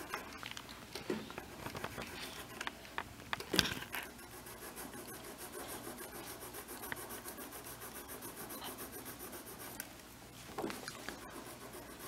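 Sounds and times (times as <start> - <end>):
pencil shading on paper: 0.0 - 0.3, 1.1 - 2.8, 4.0 - 9.9, 11.0 - 12.0.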